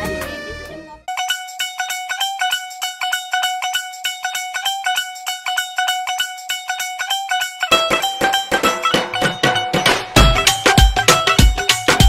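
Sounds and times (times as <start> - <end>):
high plucked-string melody: 0.0 - 12.0
low beat backing: 9.8 - 12.0.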